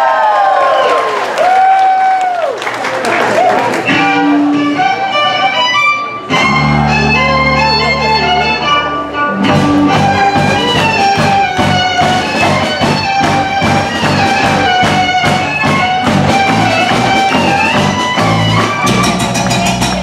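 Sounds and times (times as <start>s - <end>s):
guitars: 3.7s - 20.0s
electric bass: 3.9s - 20.0s
fiddle: 3.9s - 20.0s
drums: 9.3s - 20.0s
quick percussion hits: 9.6s - 20.0s.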